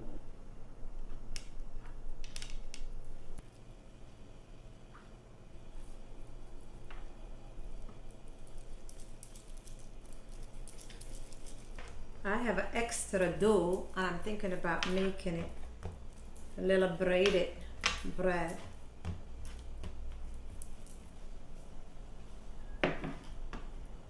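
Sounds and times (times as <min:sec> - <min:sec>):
steady low hum: 0:00.0 - 0:24.0
hands shaping bread dough: 0:05.7 - 0:22.4.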